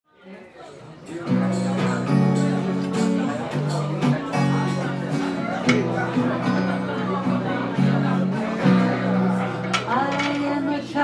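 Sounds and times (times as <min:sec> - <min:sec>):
acoustic guitar strumming: 0:01.1 - 0:11.0.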